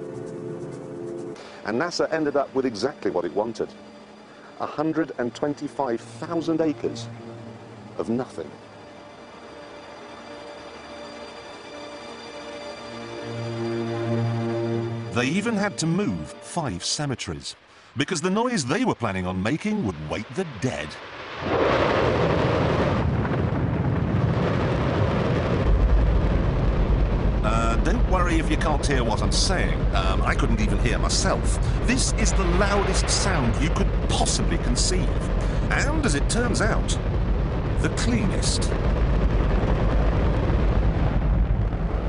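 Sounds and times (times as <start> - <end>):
rocket engine roar: 19.7 - 42.0
deep rumble: 20.4 - 42.0.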